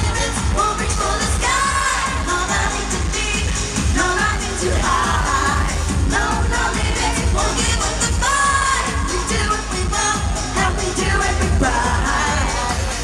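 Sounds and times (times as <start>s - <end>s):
loud pop dance music: 0.0s - 13.0s
woman singing into a microphone: 0.0s - 13.0s.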